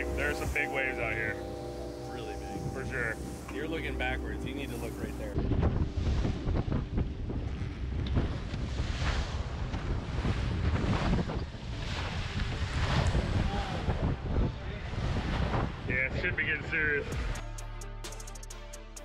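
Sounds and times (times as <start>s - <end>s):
boat engine rumble: 0.0s - 15.0s
wind buffeting microphone: 0.0s - 17.2s.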